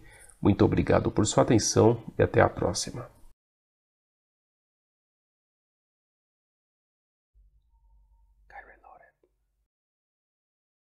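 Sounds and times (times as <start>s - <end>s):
faint whispering voice: 8.4s - 9.3s.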